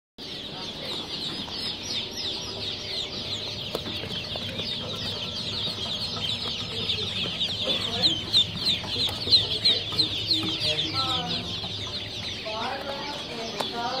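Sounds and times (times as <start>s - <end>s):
ducklings peeping: 0.2s - 14.0s.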